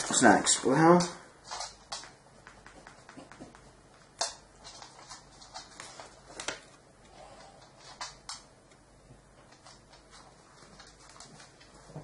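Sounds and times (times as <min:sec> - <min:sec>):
paper card rustling: 0:04.6 - 0:06.8.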